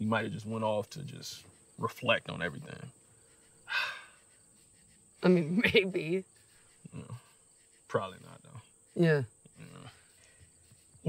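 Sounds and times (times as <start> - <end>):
crickets chirring: 0.0 - 11.0
person exhaling: 3.7 - 4.1.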